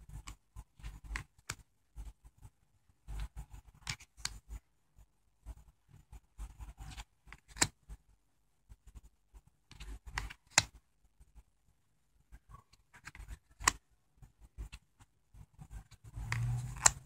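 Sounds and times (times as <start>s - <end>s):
cards sliding and flicking: 3.1s - 4.5s, 6.7s - 7.8s, 9.7s - 10.8s, 13.0s - 13.8s, 15.8s - 17.0s.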